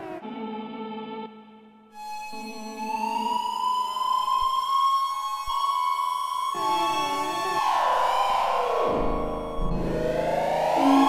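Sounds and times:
siren-like synthesizer drone: 6.5 - 11.0.

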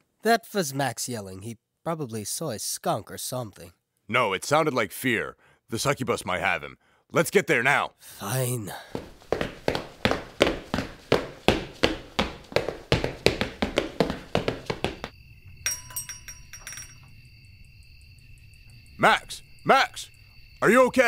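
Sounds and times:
crickets chirping: 7.6 - 21.0
hurried footsteps: 8.8 - 15.1.

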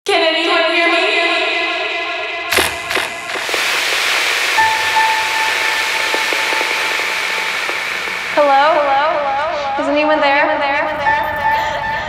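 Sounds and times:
warbling pitched synth sound: 2.5 - 9.4
wash of noise: 2.5 - 9.5
steady synth tone: 2.5 - 9.8.

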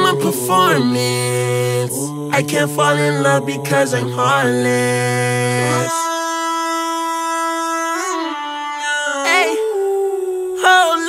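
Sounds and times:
held synth note in hip-hop track: 0.0 - 11.0.

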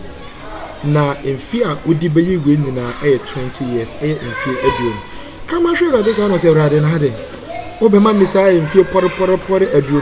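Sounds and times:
man talking: 0.8 - 10.0.

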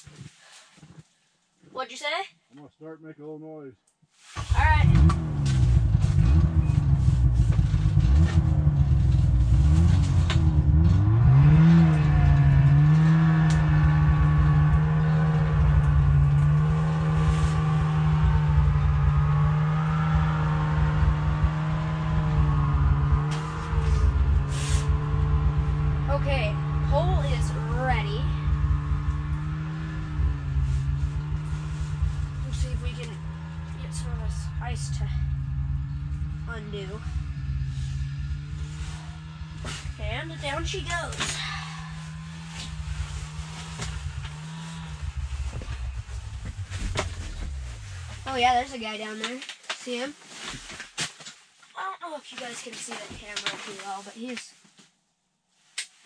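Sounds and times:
small engine revving: 4.4 - 49.6.

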